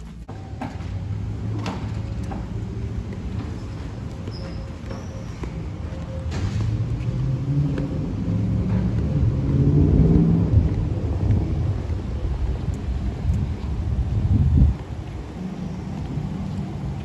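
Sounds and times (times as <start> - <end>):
low rumble: 6.6 - 17.0.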